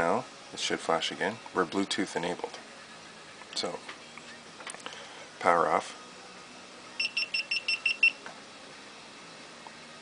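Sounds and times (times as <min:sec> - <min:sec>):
short high beeps: 0:07.0 - 0:08.2.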